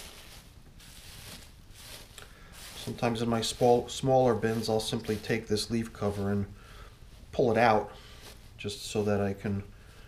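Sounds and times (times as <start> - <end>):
faint rustling of dry leaves: 0.0 - 10.0.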